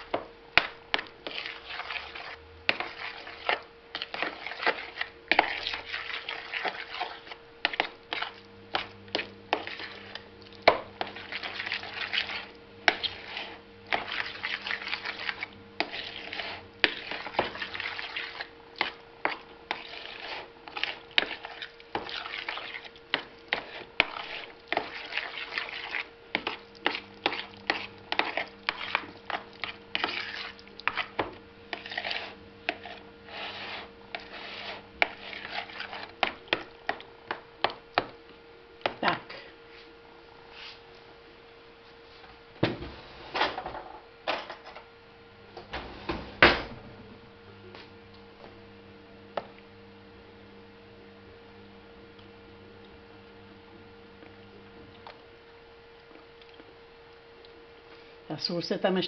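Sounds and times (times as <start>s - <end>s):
wet scraping of fork mashing: 0.6s - 38.1s.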